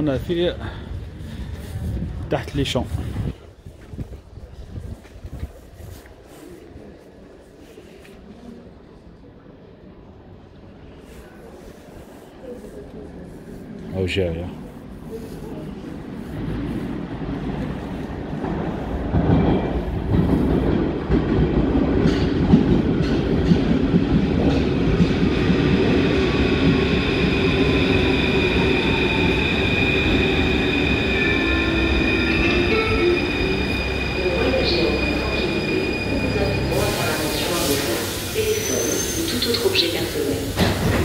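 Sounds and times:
train rumbling: 0:10.0 - 0:41.0
sudden hiss: 0:34.3 - 0:41.0.

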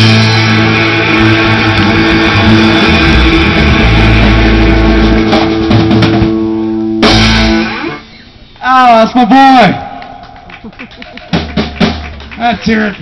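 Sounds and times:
rock band playing: 0:00.0 - 0:08.5.

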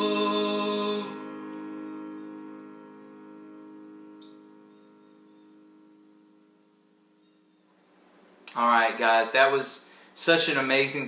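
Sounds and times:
worship song accompaniment chord: 0:00.0 - 0:06.8.

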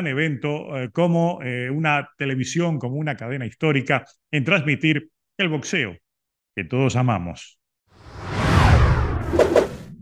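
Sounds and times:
whoosh with falling sweep: 0:08.0 - 0:10.0.

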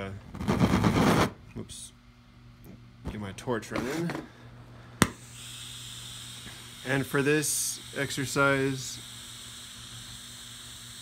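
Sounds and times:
torch lighting with sharp pop: 0:05.0 - 0:05.6.

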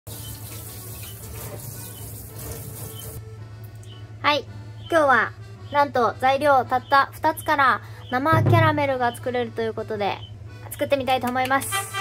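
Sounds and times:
tap water running into a steel sink: 0:00.1 - 0:03.2.

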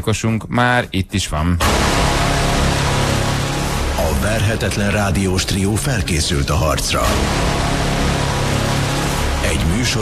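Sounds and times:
dramatic radio jingle music: 0:01.6 - 0:10.0.

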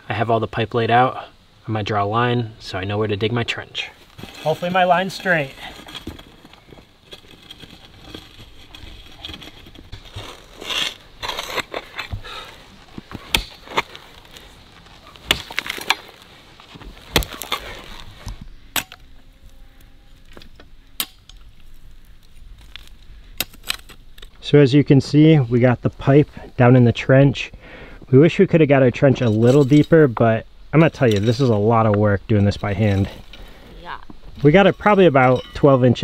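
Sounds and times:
hoe chopping into stony dirt: 0:04.2 - 0:14.4, 0:15.1 - 0:16.2, 0:16.8 - 0:19.0.

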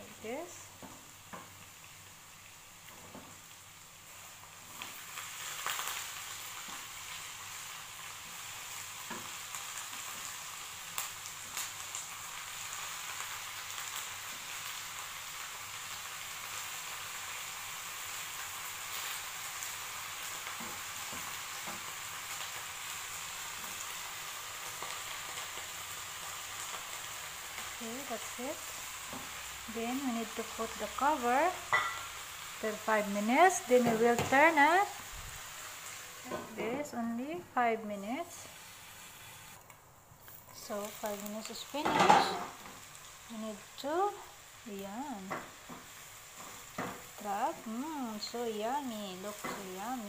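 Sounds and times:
vegetables sizzling in a pan: 0:00.0 - 0:50.0.

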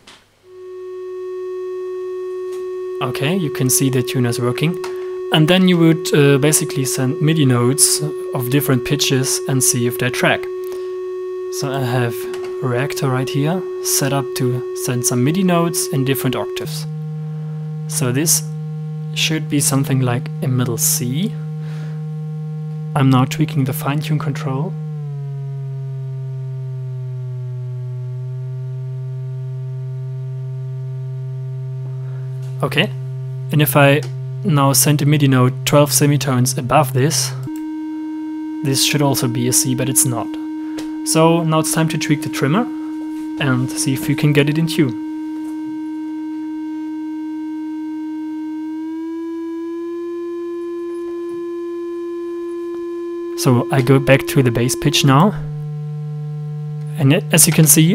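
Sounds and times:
steady synthesizer tone: 0:00.4 - 0:57.9.

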